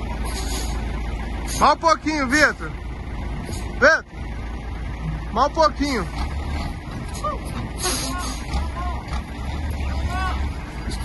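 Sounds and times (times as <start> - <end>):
log loader engine rumbling: 0.0 - 11.0.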